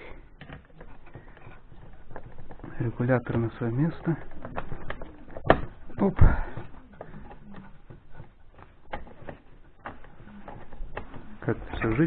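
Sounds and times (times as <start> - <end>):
plastic clicks and knocks: 0.3 - 12.0.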